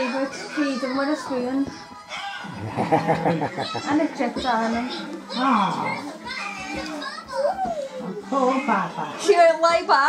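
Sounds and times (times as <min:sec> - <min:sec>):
voices in room: 0:00.0 - 0:10.0.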